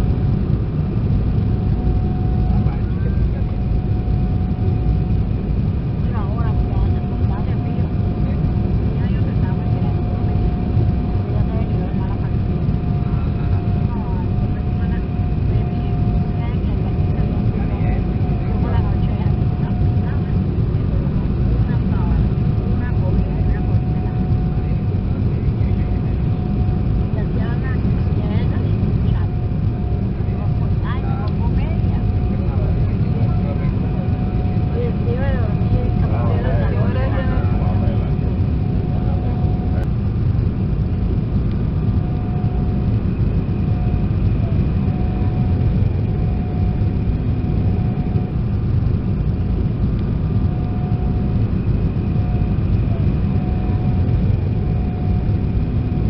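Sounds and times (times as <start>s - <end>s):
jet engines droning: 0.0s - 56.0s
steady whine: 0.0s - 56.0s.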